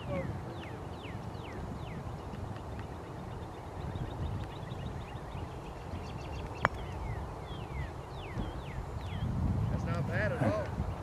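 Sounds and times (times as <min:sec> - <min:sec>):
small birds chirping: 0:00.0 - 0:11.0
wind rumble on microphone: 0:00.0 - 0:11.0.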